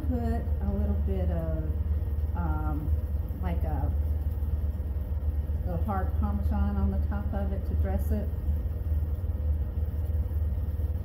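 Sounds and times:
woman speaking: 0.0 - 4.0, 5.6 - 8.3
steady low hum: 0.0 - 11.0.

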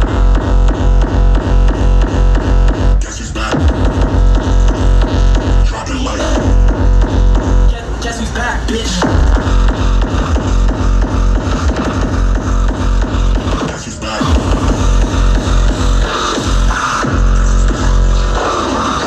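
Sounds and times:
electronic dance music: 0.0 - 19.0.

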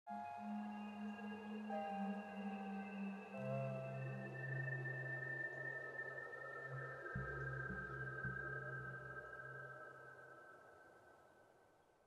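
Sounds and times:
ambient music of held tones: 0.1 - 10.2.

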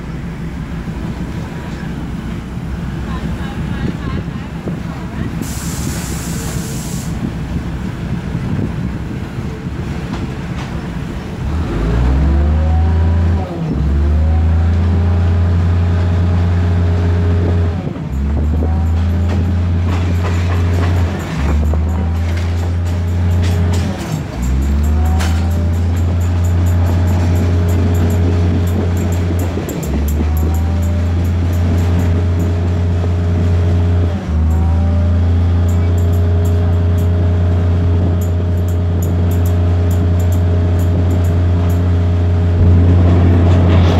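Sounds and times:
diesel engine drone: 0.0 - 43.9.

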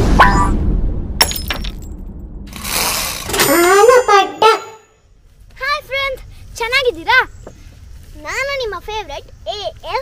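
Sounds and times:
whoosh: 0.0 - 3.8
low rumble: 0.0 - 3.9.

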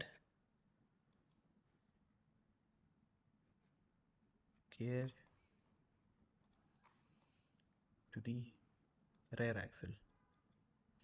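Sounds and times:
computer mouse clicks: 1.1 - 1.5, 6.4 - 7.7, 10.3 - 10.7.

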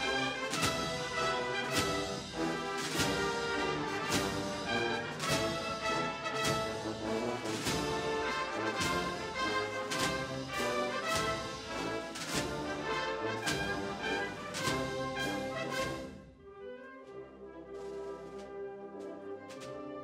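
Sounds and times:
steady drum beat: 0.0 - 16.2
wind band playing a march: 0.0 - 20.0.

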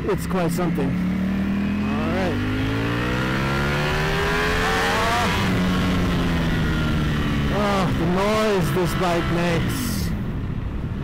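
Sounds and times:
motorcycle engine accelerating: 0.0 - 10.1.

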